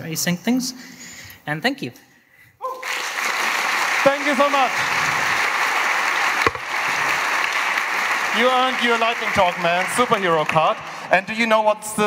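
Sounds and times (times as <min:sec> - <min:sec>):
audience applauding: 0:02.7 - 0:11.8
sharp knock: 0:06.4 - 0:06.7.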